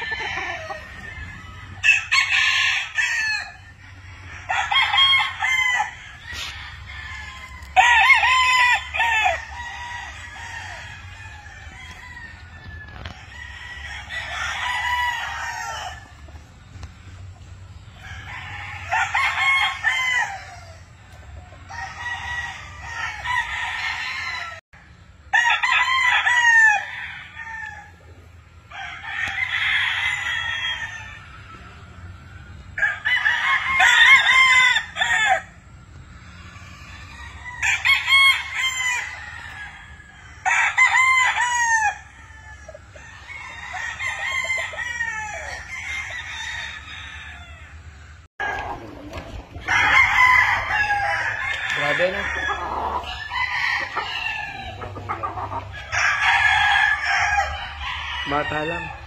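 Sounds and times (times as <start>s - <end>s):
roosters crowing: 0.0s - 59.0s.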